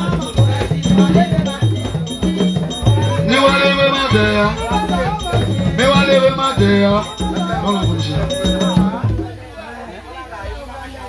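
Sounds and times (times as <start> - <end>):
music and singing: 0.0 - 11.0
people talking: 0.0 - 11.0.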